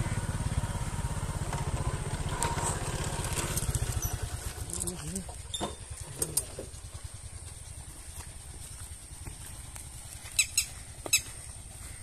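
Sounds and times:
bird squawks: 10.3s - 11.4s.

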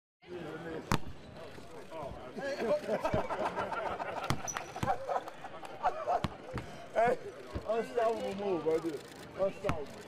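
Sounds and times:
chatter of voices: 0.2s - 10.0s.

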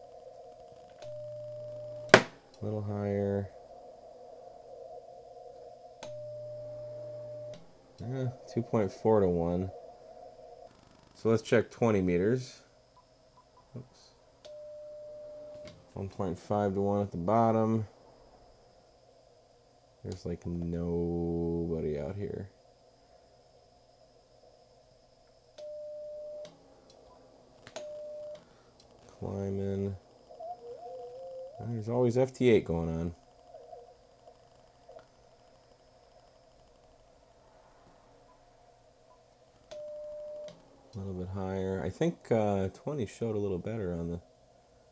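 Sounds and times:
steady radio tone: 0.0s - 12.8s, 13.6s - 18.4s, 25.6s - 36.8s
warbling data tones: 0.0s - 15.7s, 25.6s - 37.2s
faint receiver hiss: 0.0s - 44.9s
steady radio beep: 1.0s - 2.3s, 6.0s - 10.0s
radio click: 5.5s - 6.2s.

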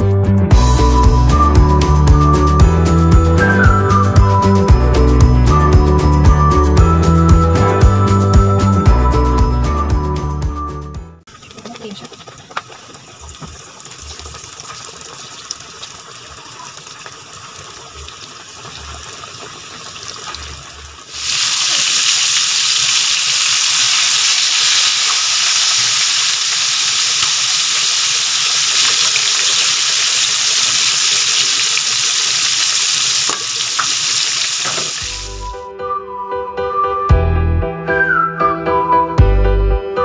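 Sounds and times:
pork chops deep-frying in oil: 11.3s - 35.5s.

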